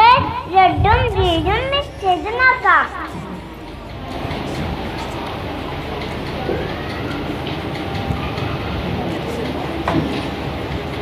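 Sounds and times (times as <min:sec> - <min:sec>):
child speaking into a microphone: 0:00.0 - 0:03.4
background noise: 0:00.0 - 0:11.0.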